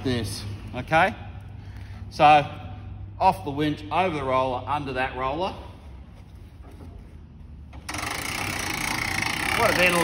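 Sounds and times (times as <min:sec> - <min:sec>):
winch mechanical whir: 0:07.7 - 0:10.0.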